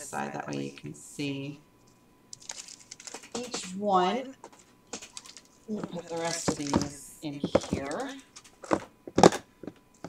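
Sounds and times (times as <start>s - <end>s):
paper liners rustling: 2.3s - 3.8s, 4.4s - 8.8s.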